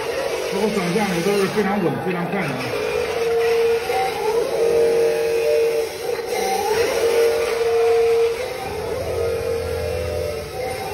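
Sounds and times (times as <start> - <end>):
toy electric motors whining: 0.0 - 10.9.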